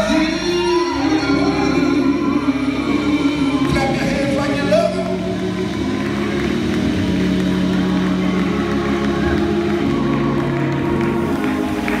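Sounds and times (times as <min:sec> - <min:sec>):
gospel band playing slow chords: 0:00.0 - 0:12.0.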